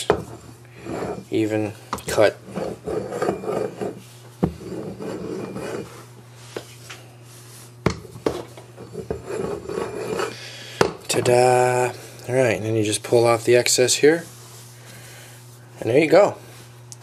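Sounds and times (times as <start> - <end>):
rolling pin rasping on metal pan rim: 2.5 - 4.0, 8.9 - 10.4.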